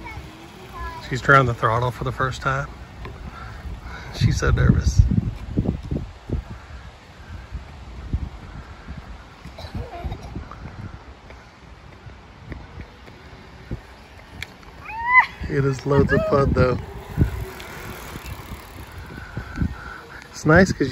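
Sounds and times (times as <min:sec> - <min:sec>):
wind on microphone: 0:02.8 - 0:20.9.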